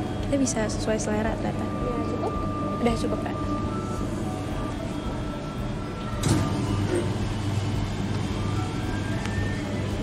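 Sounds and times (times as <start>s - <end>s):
ice cream machine motor hum: 0.0s - 10.0s.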